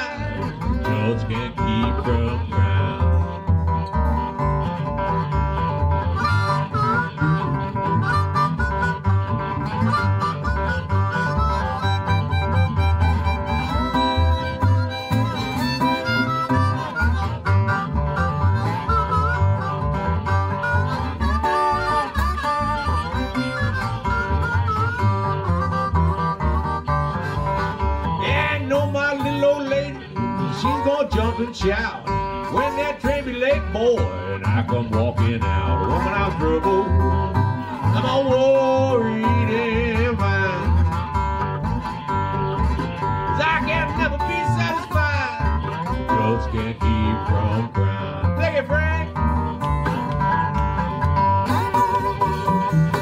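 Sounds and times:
blues harmonica solo: 0.0 - 34.8, 35.6 - 53.0
acoustic guitar rhythm: 0.0 - 53.0.

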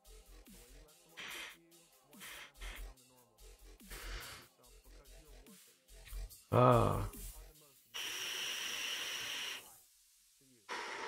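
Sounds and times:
airy hiss of vape: 1.2 - 2.9, 3.8 - 4.5, 8.0 - 9.8.

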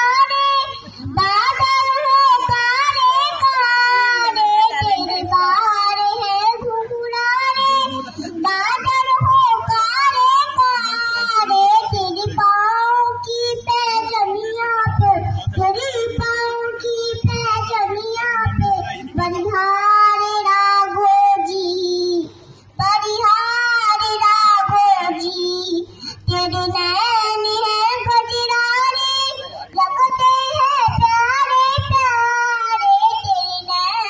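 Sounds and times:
girl singing into a microphone: 0.0 - 34.0.

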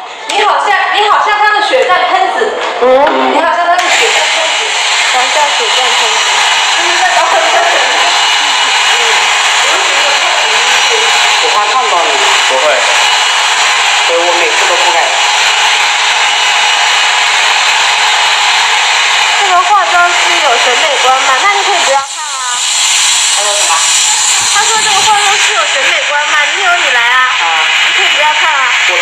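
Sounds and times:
hair dryer blowing: 3.7 - 29.0.

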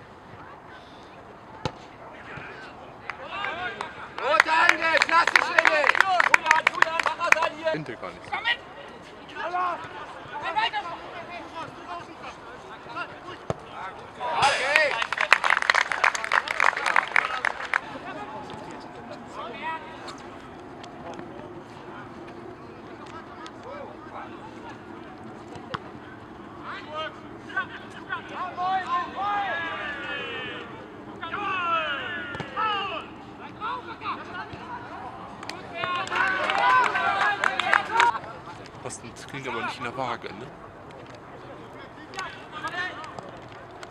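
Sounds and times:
people shouting outdoors: 26.6 - 38.2.

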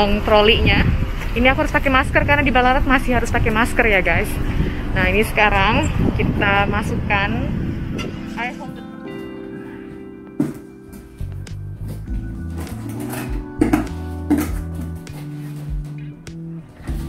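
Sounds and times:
background music with bass line: 0.7 - 17.0.

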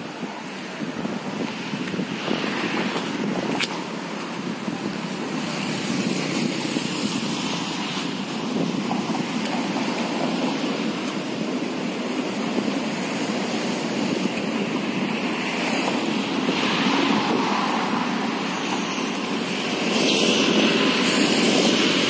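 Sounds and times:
road traffic: 0.0 - 22.0
wind on microphone: 0.0 - 22.0.

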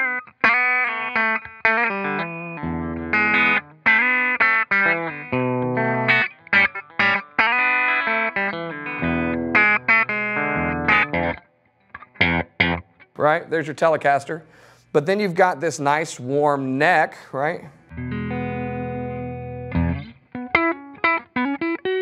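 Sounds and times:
clean electric guitar: 0.0 - 13.2, 17.6 - 22.0.

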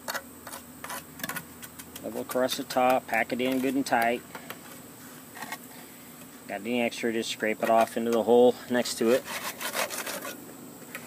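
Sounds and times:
trowel scraping wet concrete: 0.0 - 4.2, 7.6 - 10.4.

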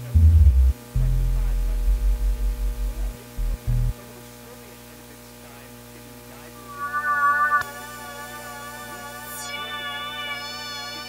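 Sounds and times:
deep pulsing synthesizer bass: 0.0 - 3.9
electrical mains hum: 0.0 - 11.0
faint gliding tones: 6.4 - 11.0.

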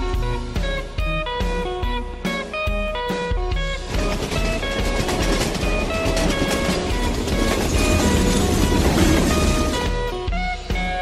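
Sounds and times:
plucked background music: 0.0 - 11.0
train wheels clacking on rails: 3.8 - 10.2.

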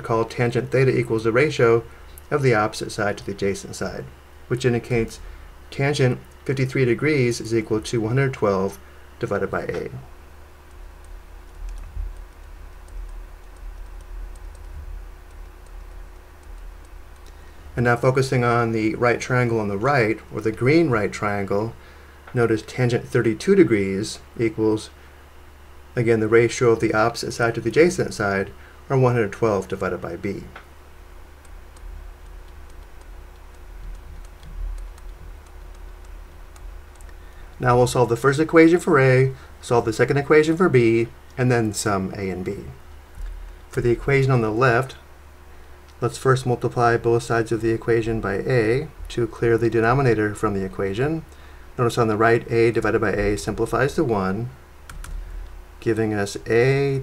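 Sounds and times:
steady low hum: 0.0 - 57.0
stylus ticking on pen tablet: 10.7 - 17.3, 31.4 - 37.2.

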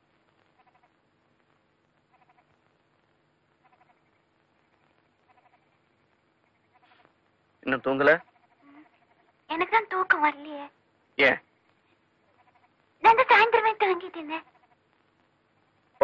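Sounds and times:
faint short animal call: 0.5 - 1.0, 2.1 - 2.6, 3.6 - 4.1, 5.2 - 5.8, 6.6 - 7.1, 12.3 - 12.8.

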